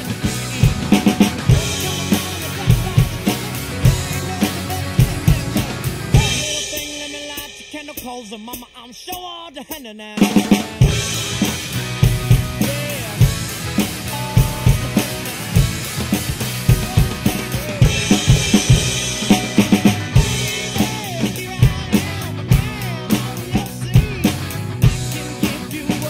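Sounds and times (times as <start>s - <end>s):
drum kit playing rock groove: 0.0s - 26.0s
recorded rock song: 0.0s - 26.0s.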